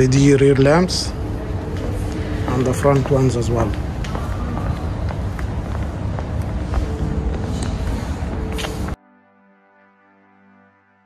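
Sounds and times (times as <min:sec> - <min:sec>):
footsteps on tiled floor: 0:01.4 - 0:09.0.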